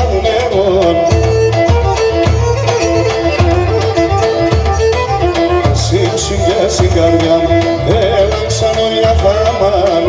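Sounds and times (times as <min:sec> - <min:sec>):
bowed lyra melody: 0:00.0 - 0:10.0
drum beat: 0:00.0 - 0:10.0
keyboard bass notes: 0:00.0 - 0:10.0.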